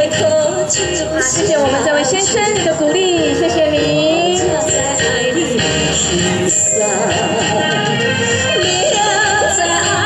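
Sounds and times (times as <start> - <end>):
karaoke ballad backing track: 0.0 - 10.0.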